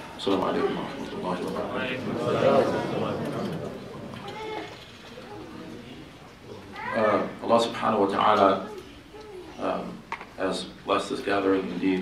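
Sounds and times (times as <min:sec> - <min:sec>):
man speaking into a microphone: 0:00.0 - 0:03.5, 0:06.8 - 0:08.7, 0:09.6 - 0:12.0
faint voices in a hall: 0:00.0 - 0:12.0.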